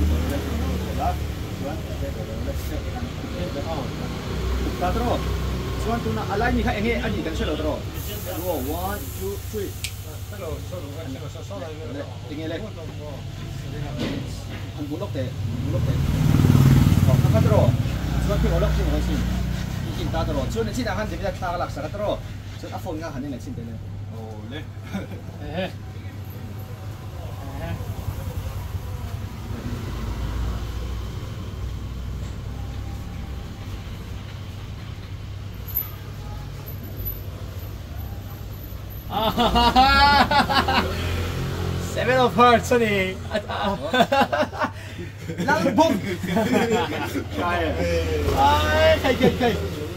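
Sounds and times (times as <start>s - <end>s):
people murmuring: 43.1s - 49.9s.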